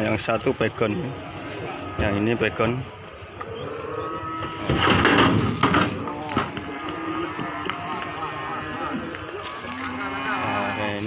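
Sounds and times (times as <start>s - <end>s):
cattle mooing: 0.9s - 11.0s.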